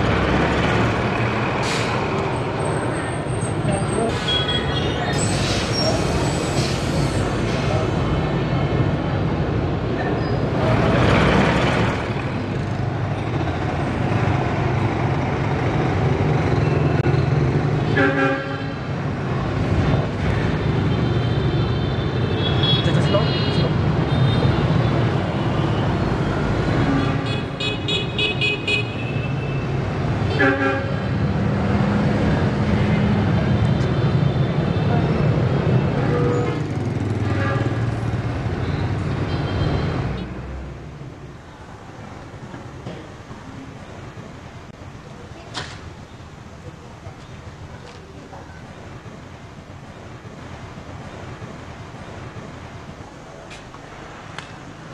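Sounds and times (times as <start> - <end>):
engine hum of traffic: 0.0 - 54.9
vehicle horns: 17.9 - 18.8, 26.8 - 29.6, 30.3 - 31.1, 37.3 - 37.9.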